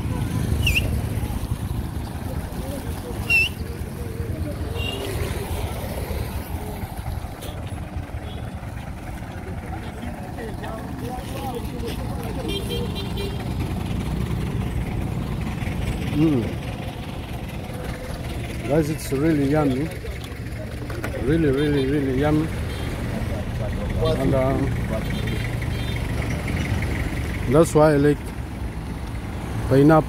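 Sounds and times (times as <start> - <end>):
voices in background: 0.0 - 28.4
traffic rumble: 0.0 - 30.0.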